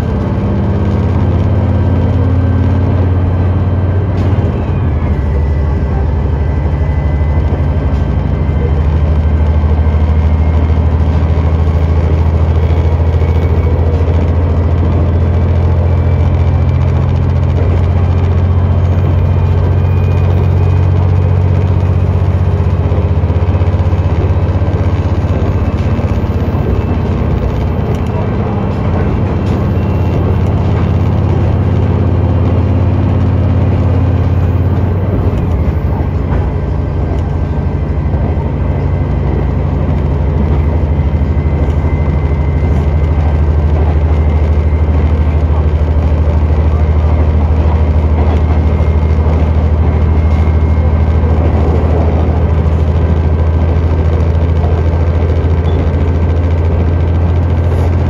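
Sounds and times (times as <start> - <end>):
diesel engine drone: 0.0 - 58.0
wheels on track running noise: 0.0 - 58.0.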